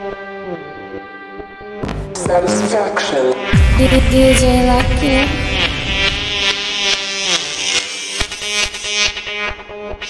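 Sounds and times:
distorted electronic synth: 1.9 - 9.3.

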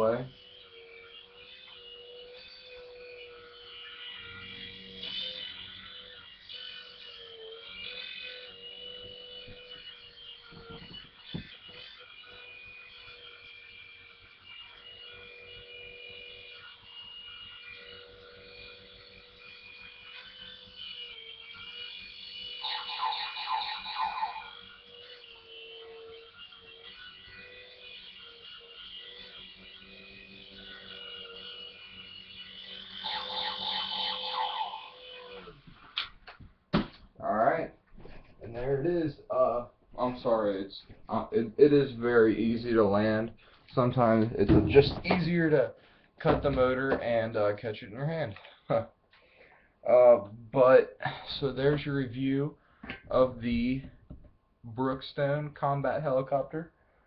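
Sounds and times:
toy helicopter motor whine: 0.0 - 54.3.

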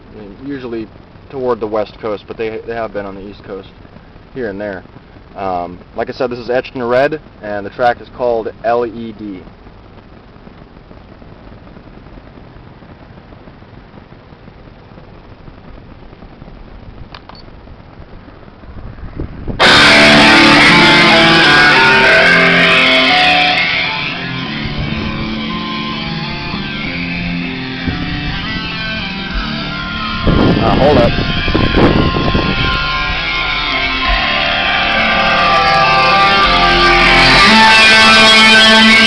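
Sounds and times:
rock song on car speakers: 0.0 - 39.0
steady hiss: 0.0 - 39.0.

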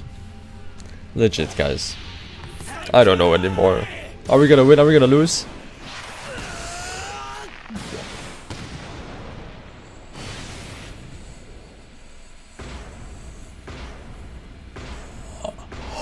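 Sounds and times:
booming impacts: 7.5 - 16.0.

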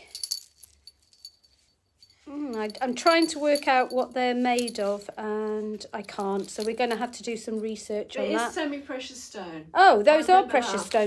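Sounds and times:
chain necklace jangling: 0.0 - 8.0, 10.6 - 11.0.

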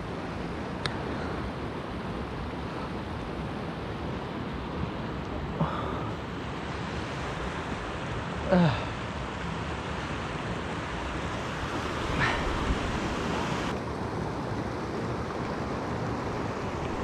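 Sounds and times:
creek water running over rocks: 0.0 - 17.0.

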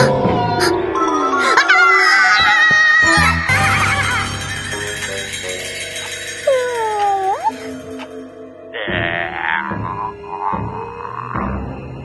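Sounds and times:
cartoon background music: 0.0 - 12.0.

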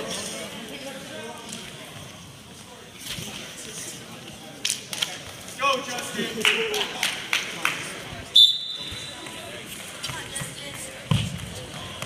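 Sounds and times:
murmur of spectators' voices: 0.0 - 12.0.

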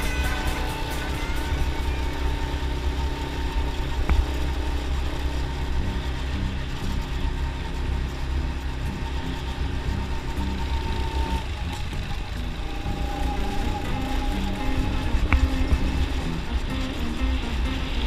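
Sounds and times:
go-kart engine running: 0.0 - 18.0
wind rumble on microphone: 0.0 - 18.0.

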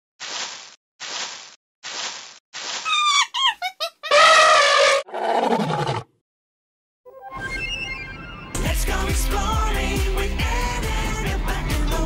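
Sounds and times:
short squeaky animal calls: 2.8 - 5.1
loud held animal call: 2.9 - 6.0.

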